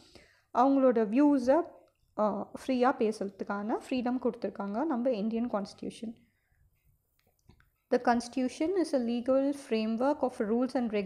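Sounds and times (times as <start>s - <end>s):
person speaking: 0.6s - 6.2s.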